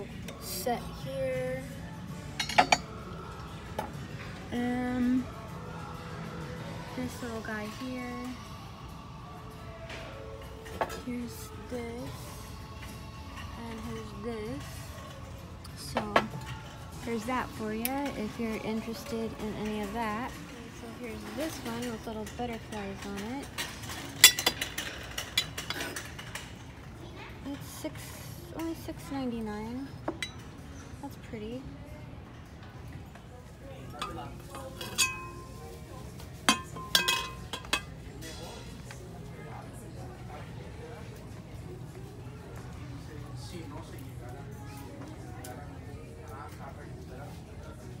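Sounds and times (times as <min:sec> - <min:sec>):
ceramic plates clinking: 0:02.4 - 0:02.9, 0:21.6 - 0:26.4, 0:34.0 - 0:35.8, 0:36.4 - 0:38.0
ceramic teapot lid clinking: 0:36.5 - 0:37.9.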